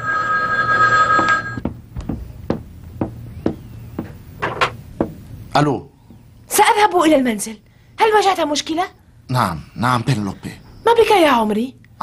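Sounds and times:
telephone ringing: 0.0 - 1.6.

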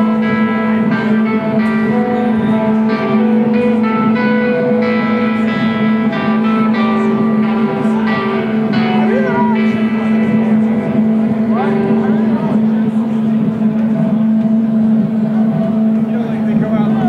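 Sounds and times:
crowd chatter: 0.0 - 17.0
electric amplifier drone: 0.0 - 17.0.

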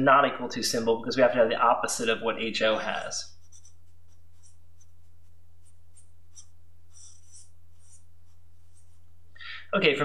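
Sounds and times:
marker squeaking on paper: 3.3 - 9.1.

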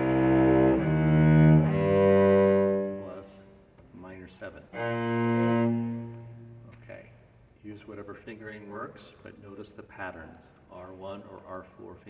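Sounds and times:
low cello note bowed: 0.0 - 3.4, 4.7 - 6.8.

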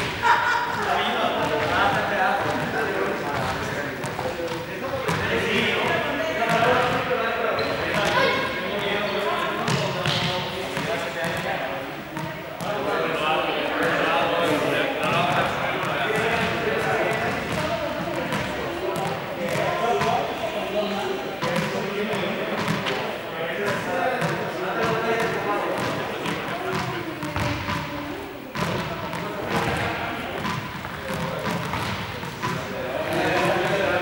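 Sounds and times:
people chattering: 0.0 - 34.0.

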